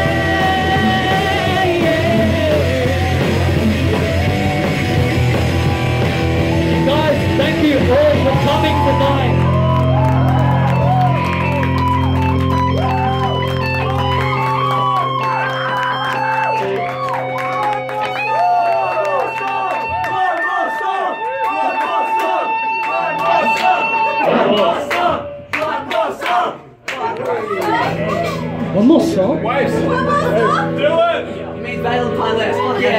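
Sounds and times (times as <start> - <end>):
electric guitar and bass chords ringing: 0.0 - 25.6, 27.8 - 32.9
audience cheering and whooping: 5.1 - 26.2.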